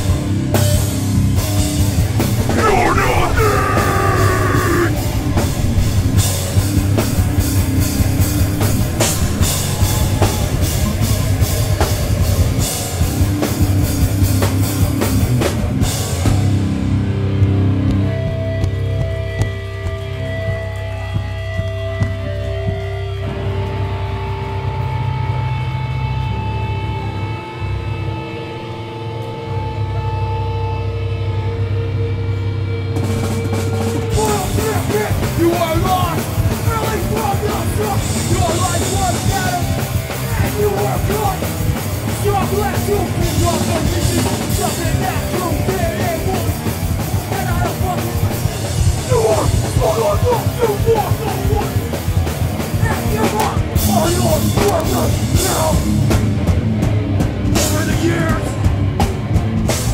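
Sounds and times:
punk band playing live: 0:00.0 - 0:28.4, 0:30.1 - 0:59.9
distorted electric guitars: 0:00.0 - 0:59.9.

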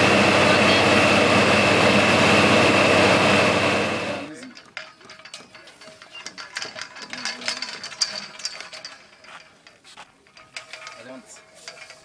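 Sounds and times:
metal pipe and tools clinking: 0:04.3 - 0:12.0.

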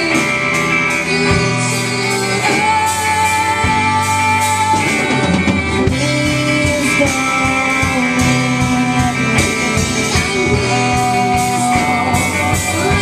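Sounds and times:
bass guitar: 0:00.0 - 0:13.0
drums: 0:00.0 - 0:13.0
electric guitars sustained notes: 0:00.0 - 0:13.0.

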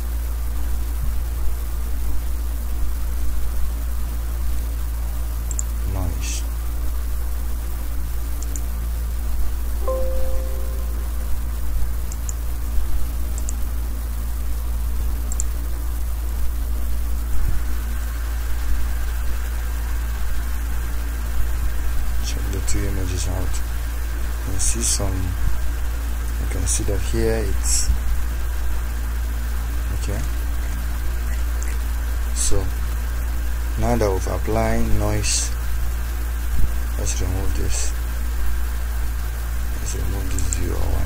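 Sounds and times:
electrical hum and hiss: 0:00.0 - 0:41.0
faint short clicks: 0:05.5 - 0:05.7, 0:08.4 - 0:08.7, 0:15.3 - 0:15.5.

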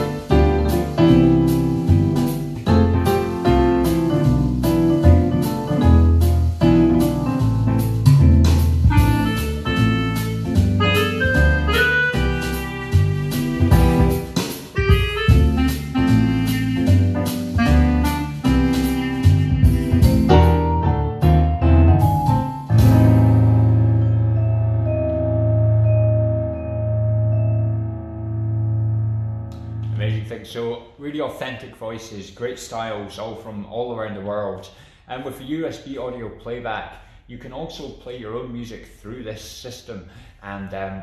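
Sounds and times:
keyboard playing jazzy tune: 0:00.0 - 0:30.0.

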